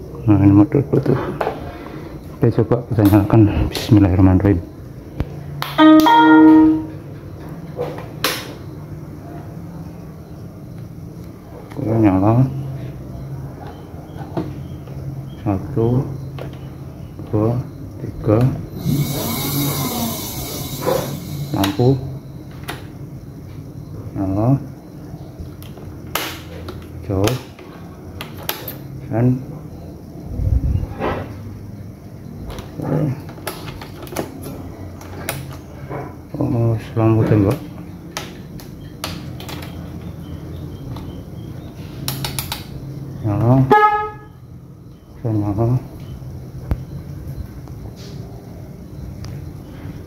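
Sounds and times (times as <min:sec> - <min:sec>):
faint steady hum: 0:00.0 - 0:50.0
electronic start-up chime: 0:05.8 - 0:07.0, 0:18.8 - 0:22.0.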